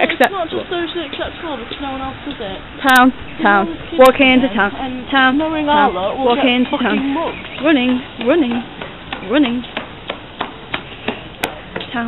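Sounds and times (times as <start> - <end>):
footsteps on pavement: 0.6 - 2.5, 5.6 - 12.0.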